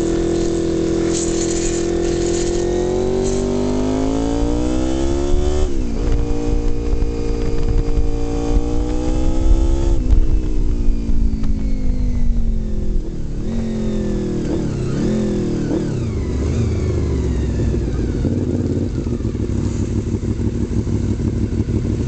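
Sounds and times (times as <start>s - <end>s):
motorcycle engine revving: 0.0s - 22.0s.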